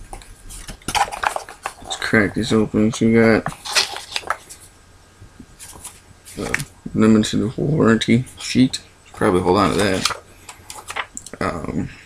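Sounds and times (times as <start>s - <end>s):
packaging clicks and rustles: 0.1s - 2.1s, 3.4s - 4.6s, 9.6s - 11.4s.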